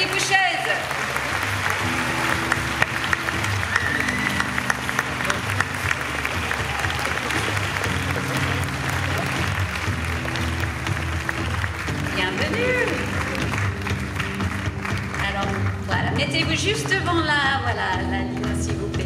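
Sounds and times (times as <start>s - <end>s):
audience applauding: 0.0s - 17.2s.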